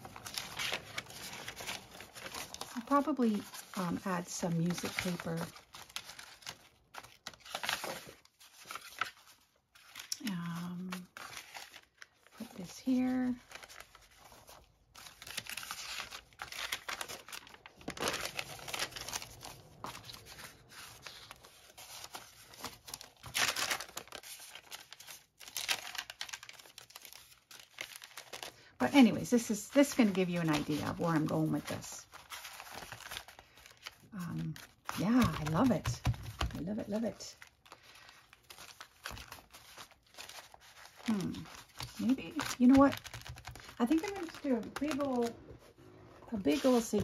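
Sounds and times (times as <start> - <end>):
paper rustling and crinkling: 0.0 - 47.0.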